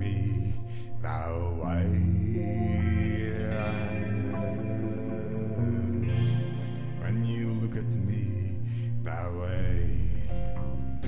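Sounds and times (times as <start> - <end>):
electric guitar droning chords: 0.0 - 11.0.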